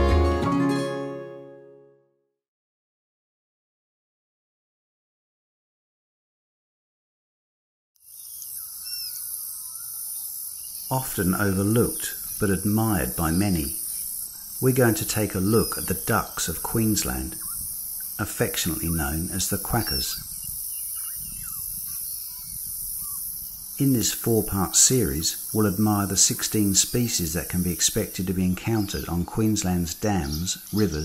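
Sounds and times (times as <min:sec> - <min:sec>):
high-pitched insect drone: 0:08.0 - 0:28.2
faint bird calls: 0:08.1 - 0:24.0.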